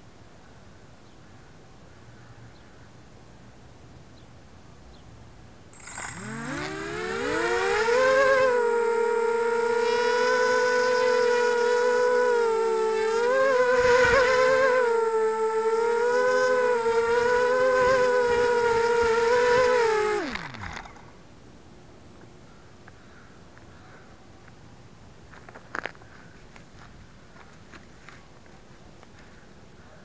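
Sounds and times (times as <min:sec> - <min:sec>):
drone motors whining: 0:05.8 - 0:21.2.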